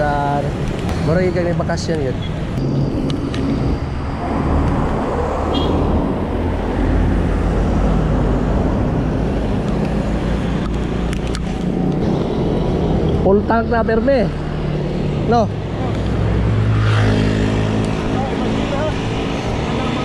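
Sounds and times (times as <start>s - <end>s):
road traffic rumble: 0.0s - 20.0s
rushing air: 2.4s - 18.0s.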